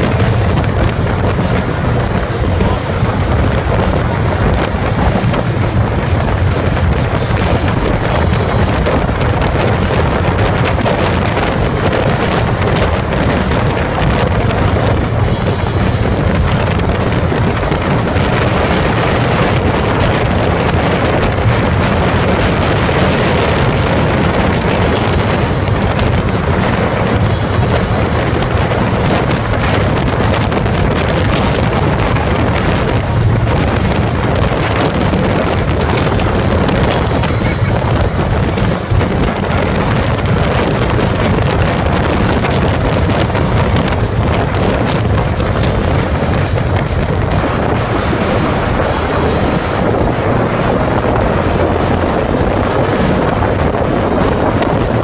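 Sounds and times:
boat engine drone: 0.0 - 55.0
rushing water: 0.0 - 55.0
rushing wind: 0.0 - 55.0.

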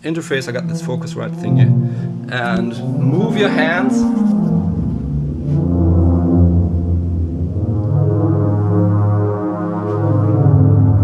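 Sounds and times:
synthesizer notes: 0.0 - 11.0.

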